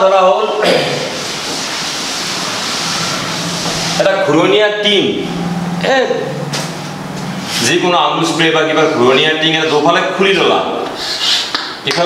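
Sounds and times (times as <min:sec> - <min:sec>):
chalkboard duster wiping: 0:01.1 - 0:04.4, 0:10.8 - 0:11.6.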